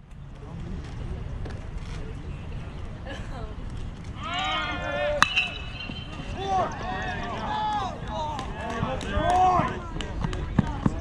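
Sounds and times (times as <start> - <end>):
voices shouting: 4.2 - 9.8
metal bat hitting ball: 5.2 - 6.7.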